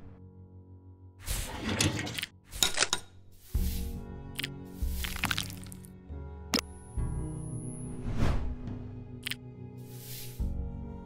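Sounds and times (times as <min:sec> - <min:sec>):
equipment sliding rattle: 0:01.4 - 0:02.3.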